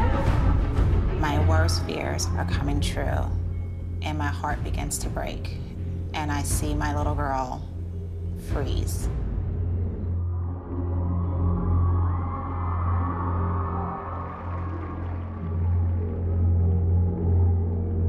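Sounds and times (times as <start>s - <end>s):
tense drone music: 0.0s - 18.0s.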